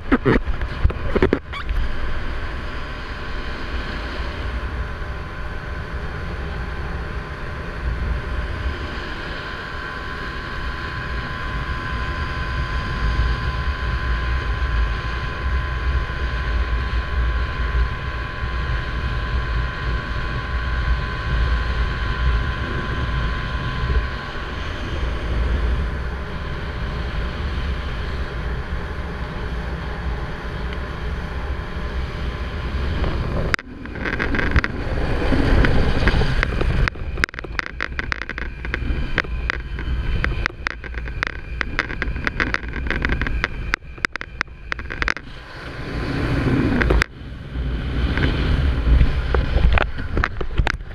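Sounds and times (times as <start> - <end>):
boat motor droning: 0.0 - 50.9
thin steady whine: 0.0 - 50.9
wind and water rumble: 0.0 - 50.9.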